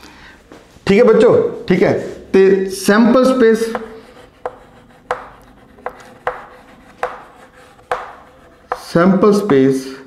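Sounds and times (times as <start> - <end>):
chalk tapping and scratching on blackboard: 3.2 - 9.7.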